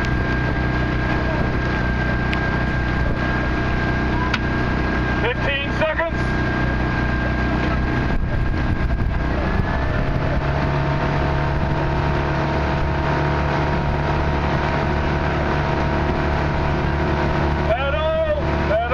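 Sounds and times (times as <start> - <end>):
wind noise: 0.0 - 17.7
outboard motor droning: 0.0 - 18.9
water noise: 0.0 - 18.9.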